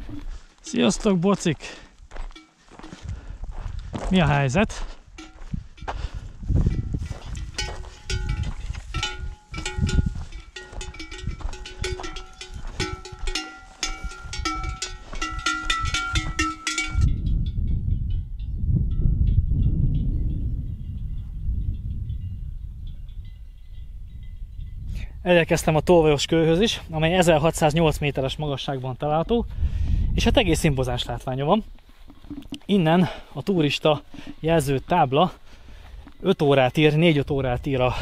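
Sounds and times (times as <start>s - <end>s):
cowbells clanking: 2.1s - 3.1s, 5.1s - 18.2s, 30.6s - 38.0s.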